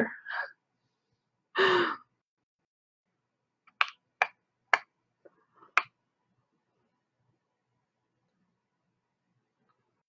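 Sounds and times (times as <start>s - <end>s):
woman's breathy sigh: 1.6s - 2.1s.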